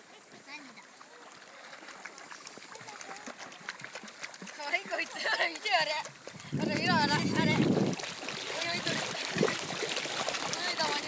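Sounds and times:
shallow sea water washing: 0.0s - 11.0s.

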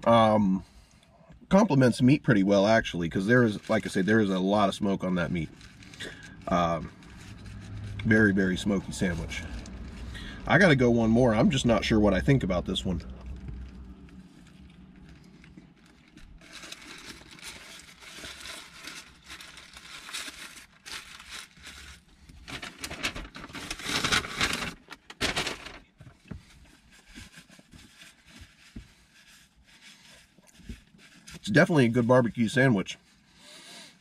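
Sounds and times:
paper wrapper crinkling: 2.3s - 32.0s.

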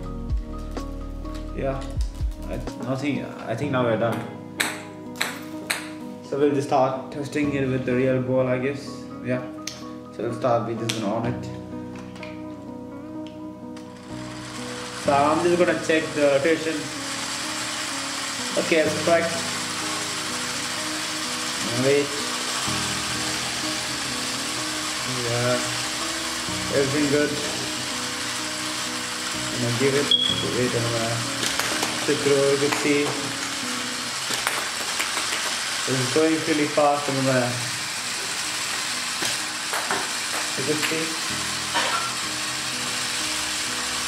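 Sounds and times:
small electric motor whirring: 13.9s - 44.0s.

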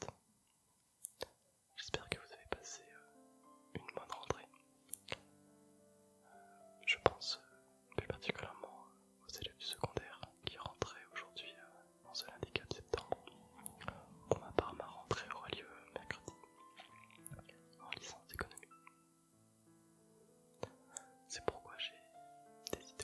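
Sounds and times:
soft background music: 0.0s - 23.0s
mouth clicks: 1.0s - 1.4s, 3.8s - 5.3s, 20.5s - 21.1s
man whispering into microphone: 1.2s - 3.1s, 3.8s - 5.2s, 6.8s - 18.7s, 20.6s - 22.0s, 22.7s - 23.0s.

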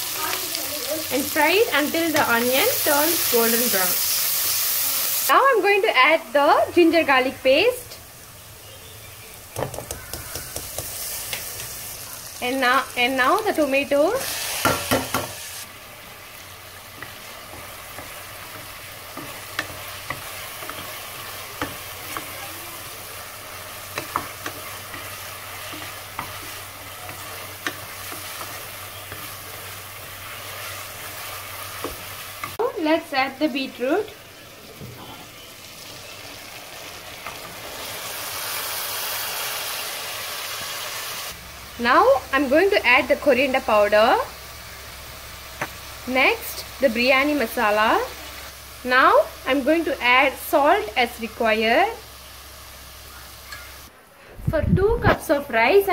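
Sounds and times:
food sizzling in hot oil: 0.0s - 53.9s
spatula knocking and scraping pan: 9.6s - 11.8s, 14.6s - 15.4s, 16.9s - 22.5s, 23.9s - 32.6s.

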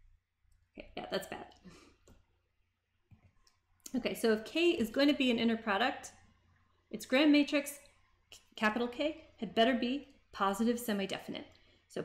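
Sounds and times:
woman speaking: 0.8s - 1.6s, 3.9s - 6.2s, 6.9s - 12.0s.

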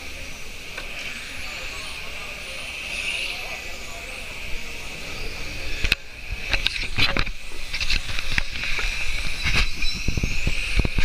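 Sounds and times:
rc car motors whining: 0.0s - 11.0s.

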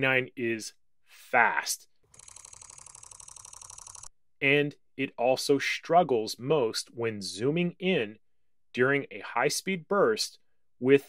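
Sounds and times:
rapid camera shutter clicks: 2.2s - 4.1s.

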